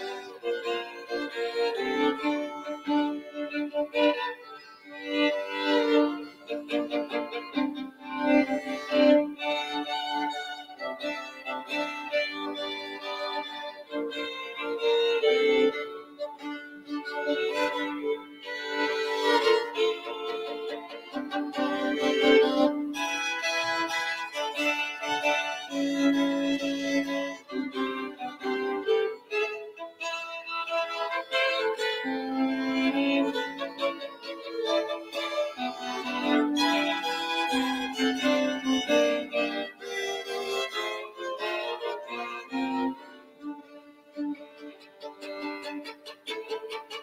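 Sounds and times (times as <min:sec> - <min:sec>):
violin playing classical piece: 0:00.0 - 0:47.0.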